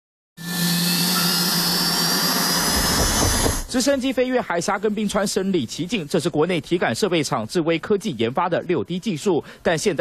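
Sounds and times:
helicopter turbine engine whine: 0.4 - 4.0.

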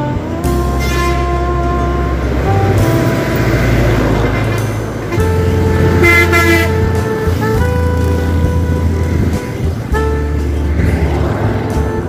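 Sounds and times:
background music: 0.0 - 12.0
road traffic passing: 0.0 - 12.0
vehicle horn: 0.0 - 12.0.

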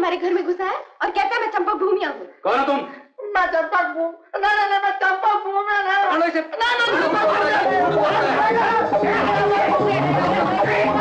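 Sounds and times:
men and women shouting: 6.7 - 11.0.

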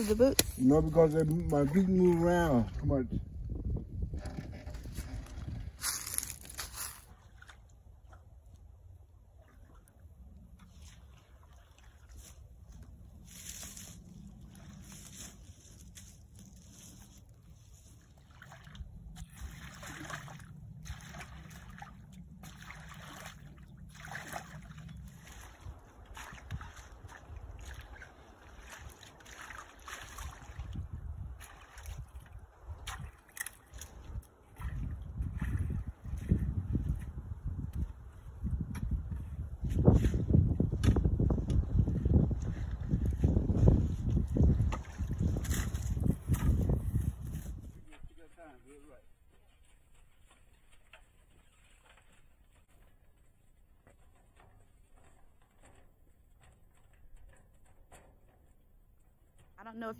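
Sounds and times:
rake sloshing through muddy water: 4.1 - 58.7.

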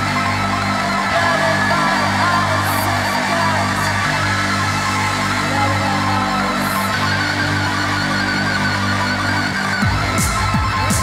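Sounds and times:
loud digital hardcore music: 0.0 - 11.0.

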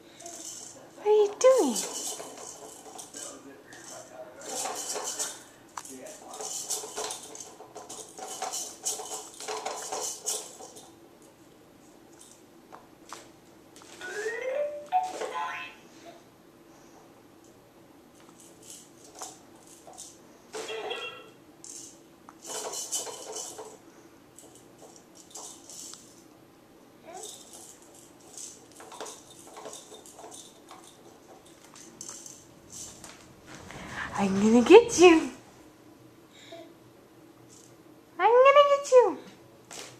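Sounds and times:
toy spinner clicking and rattling: 0.2 - 11.0, 18.4 - 20.2, 21.6 - 23.8, 24.4 - 26.2, 27.0 - 33.1.

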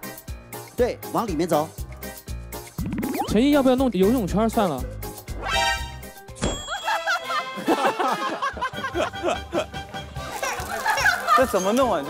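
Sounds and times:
comic ding sound effect: 2.8 - 3.5.

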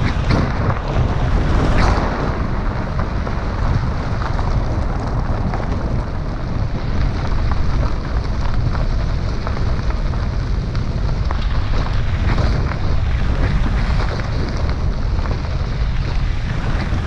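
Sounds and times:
tyres rumbling on gravel: 0.0 - 17.0
wind on microphone: 0.0 - 17.0.

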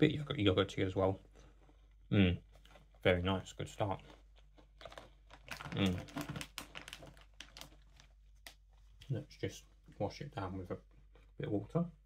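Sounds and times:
plastic bag crinkling: 3.8 - 9.0.

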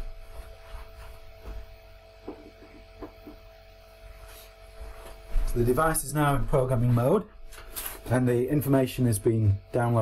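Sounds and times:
faint steady tones: 0.0 - 10.0
low electrical hum: 0.0 - 10.0.

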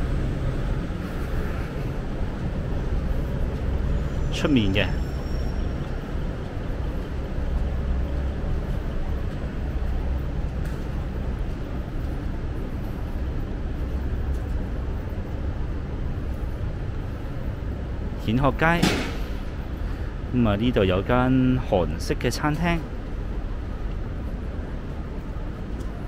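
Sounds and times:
traffic rumble: 0.0 - 26.0.

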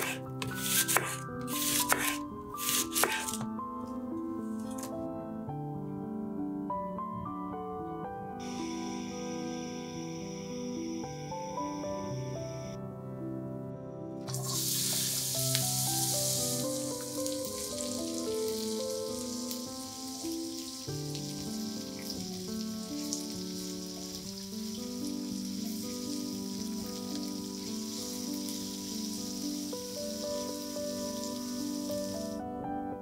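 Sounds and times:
gentle background music: 0.0 - 33.0
onions sizzling in hot oil: 14.3 - 32.3.

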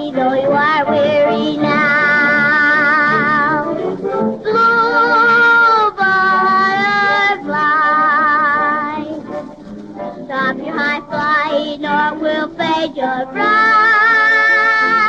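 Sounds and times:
girl singing with vibrato: 0.0 - 9.2, 10.3 - 15.0.

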